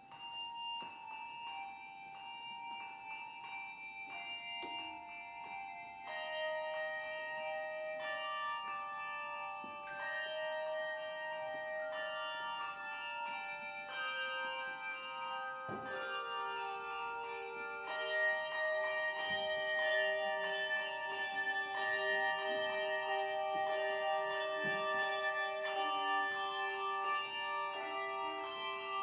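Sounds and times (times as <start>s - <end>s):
handbell choir ringing: 0.0s - 29.0s.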